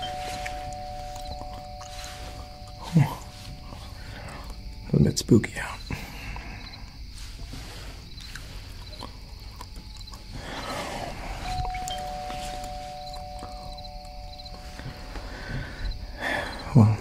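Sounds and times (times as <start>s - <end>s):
two-note doorbell chime: 0.0s - 4.9s, 11.4s - 16.6s
crickets chirping: 0.0s - 17.0s.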